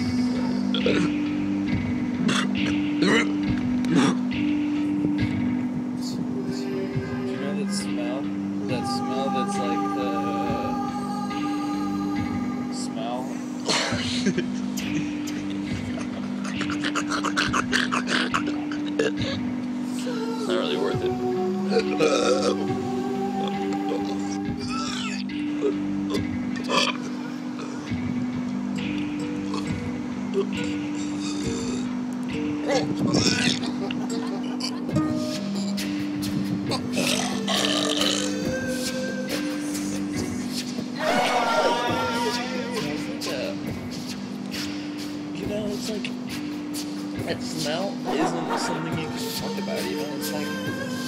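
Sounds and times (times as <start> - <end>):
low held music notes: 0.0 - 51.0
man gagging: 13.6 - 19.5, 32.7 - 35.8, 48.1 - 49.6
man laughing: 13.6 - 19.5, 33.4 - 35.5, 48.1 - 50.0
man making stuttering vocal sounds: 15.3 - 19.5.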